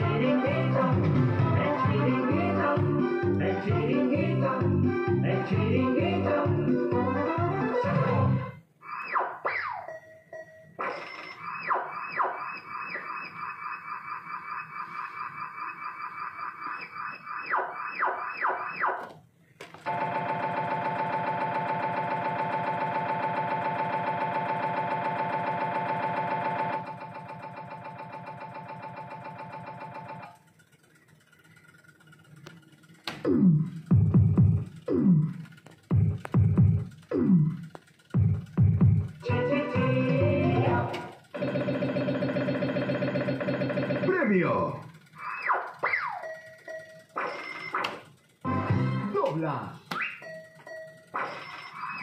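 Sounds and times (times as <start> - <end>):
electronic slot machine jingle: 0.0 - 18.9, 19.9 - 30.6, 33.3 - 52.0
loud electronic buzz: 33.1 - 46.1.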